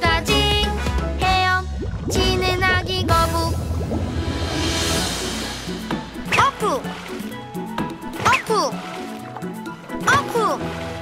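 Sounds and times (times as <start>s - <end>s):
children's song music: 0.0s - 10.7s.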